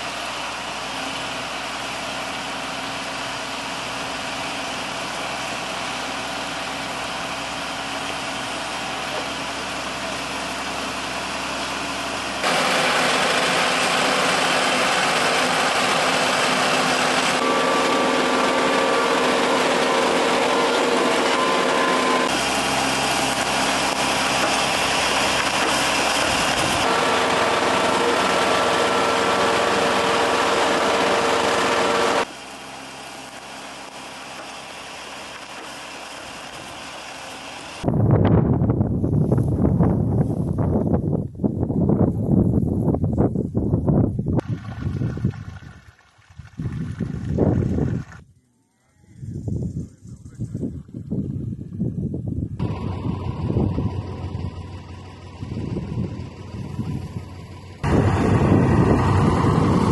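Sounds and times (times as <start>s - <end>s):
diesel engines of heavy machinery: 0.0s - 38.2s, 46.8s - 59.9s.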